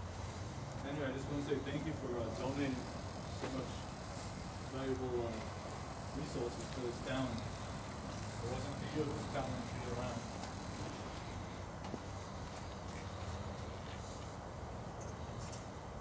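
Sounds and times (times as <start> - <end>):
distant muffled voices: 0.8 - 11.4
high-pitched electronic whine: 2.4 - 10.9.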